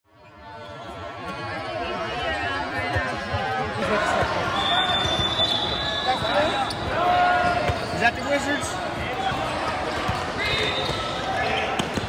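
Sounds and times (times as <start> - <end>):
people talking over one another: 0.6 - 12.0.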